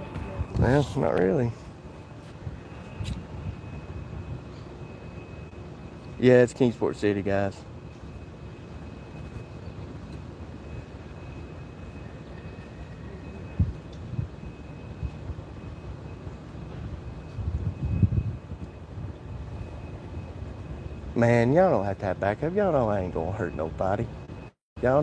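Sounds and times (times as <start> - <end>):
low rumble of distant engines: 0.0 - 25.0.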